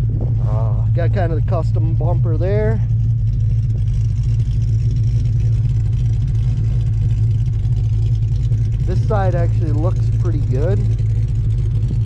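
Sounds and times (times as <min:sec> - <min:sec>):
engine humming: 0:00.0 - 0:12.0.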